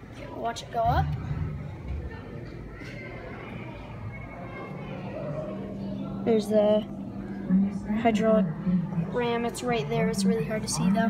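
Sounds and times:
hydraulic elevator rumble: 0.8s - 10.0s.

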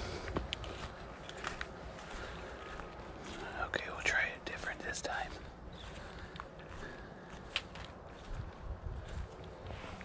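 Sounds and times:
footsteps in dry grass and leaves: 0.0s - 10.0s
man whispering: 3.3s - 5.6s.

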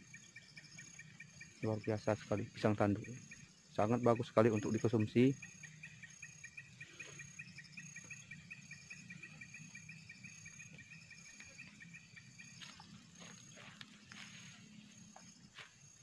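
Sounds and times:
insects chirping in a pulsed trill: 0.0s - 16.0s.

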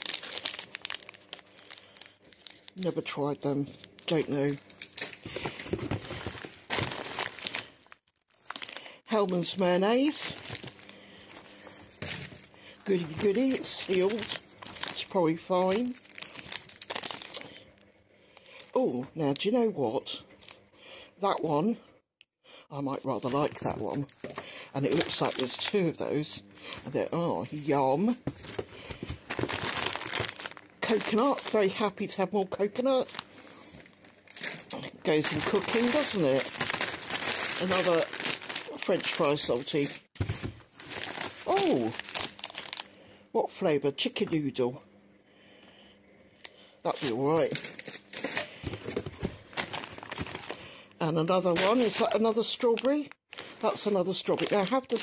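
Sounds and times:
plastic wrappers crinkling: 0.0s - 19.6s, 23.0s - 42.9s, 46.9s - 55.0s.

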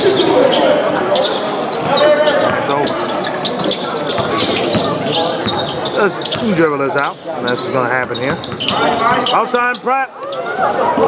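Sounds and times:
voices of players and spectators: 0.0s - 11.0s.

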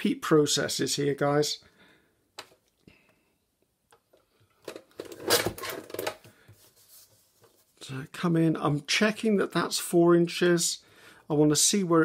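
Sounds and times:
paper rustling and scraping: 5.0s - 7.8s.

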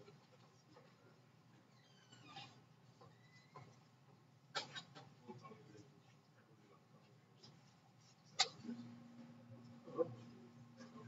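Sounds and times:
faint squeaks: 1.6s - 3.9s.

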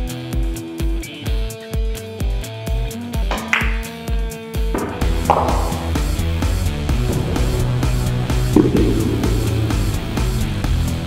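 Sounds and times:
background music with steady beat: 0.0s - 11.0s
bright hit: 7.0s - 10.2s.

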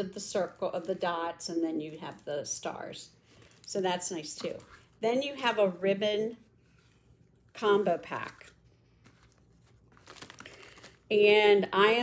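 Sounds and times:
plastic bag crinkling: 7.5s - 11.2s.

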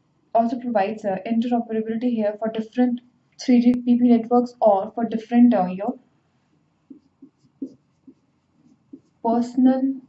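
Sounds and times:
marker pen writing on whiteboard: 5.8s - 10.0s.

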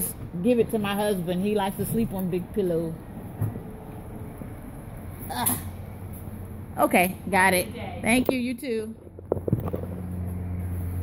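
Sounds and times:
shop interior background noise: 0.0s - 11.0s.

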